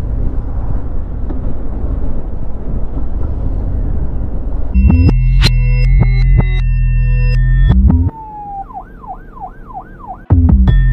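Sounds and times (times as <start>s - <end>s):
police siren yelping: 7.2s - 10.6s.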